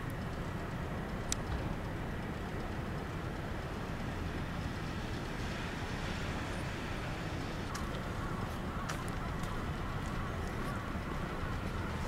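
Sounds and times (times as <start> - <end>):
low city rumble: 0.0 - 12.0
footsteps on wet stone: 8.9 - 10.8.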